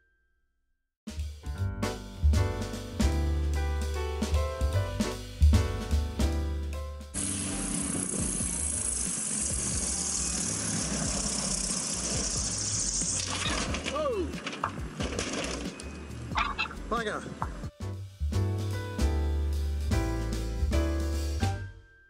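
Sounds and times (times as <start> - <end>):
background music: 1.1 - 22.0
light plane engine running: 7.2 - 13.0
person crying out: 13.9 - 14.4.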